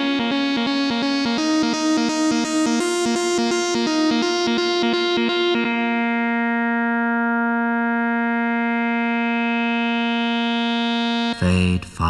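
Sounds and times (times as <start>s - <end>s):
trance music: 0.0s - 11.4s.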